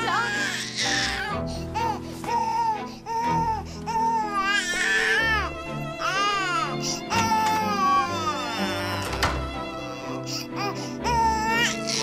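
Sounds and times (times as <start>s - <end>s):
infant crying: 0.0s - 9.1s, 9.8s - 12.0s
background music: 0.0s - 12.0s.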